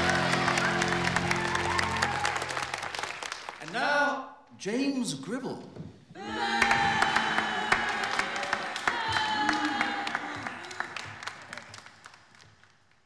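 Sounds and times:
audience clapping and cheering: 0.0 - 4.0, 6.2 - 13.0.

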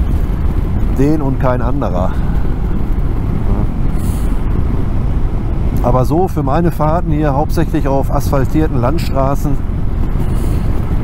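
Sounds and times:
motorcycle engine rumble: 0.0 - 11.0
wind rushing over microphone: 0.0 - 11.0.

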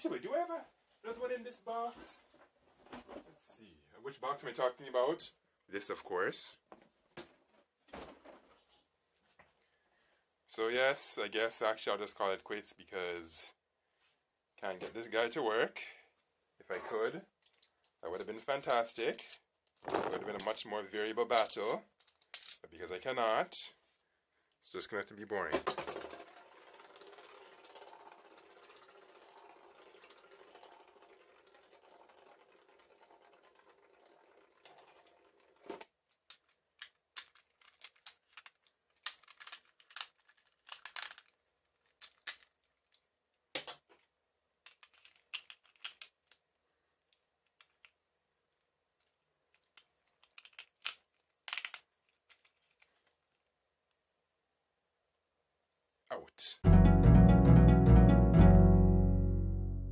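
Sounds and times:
plastic parts clicking and knocking: 17.4 - 20.6, 21.2 - 22.6, 25.4 - 53.4
spinning top whirring: 25.8 - 35.9.

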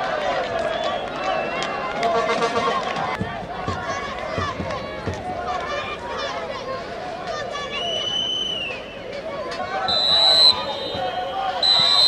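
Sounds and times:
crowd shouting and chatter: 0.0 - 12.0
referee's whistle blasts: 7.8 - 8.9, 9.8 - 12.0.

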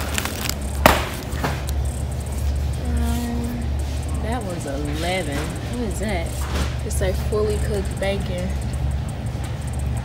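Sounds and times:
plastic wrapper crinkling: 0.0 - 1.8
steady low hum: 0.0 - 10.0.

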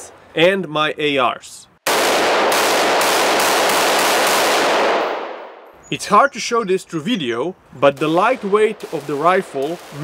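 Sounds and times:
rifle shots echoing indoors: 1.9 - 5.6.

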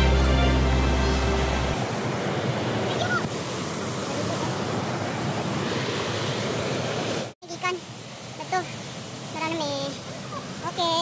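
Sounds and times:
waterfall rushing over rock: 0.0 - 11.0.

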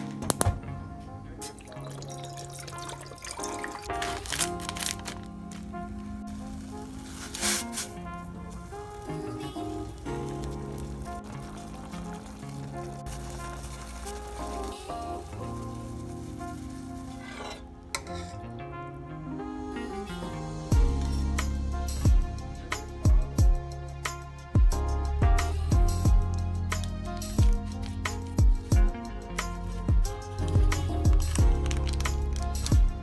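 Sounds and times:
background music with held notes: 0.0 - 33.0
water pouring into steel pot: 1.5 - 4.4.

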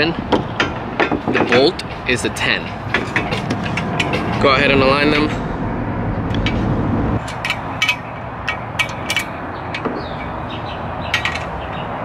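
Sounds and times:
low rumble: 2.9 - 7.3
metallic clicks of tools on bolt: 7.2 - 9.9, 11.1 - 11.6.

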